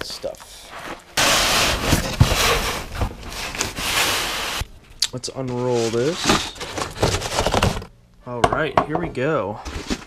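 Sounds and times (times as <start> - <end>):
cardboard rustling and scraping: 0.6 - 4.6, 5.4 - 7.9, 9.6 - 10.0.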